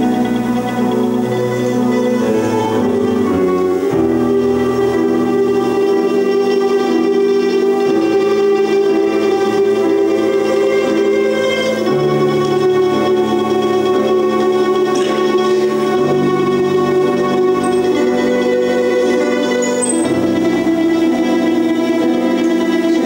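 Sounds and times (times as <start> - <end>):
string ensemble slow melody: 0.0 - 23.0.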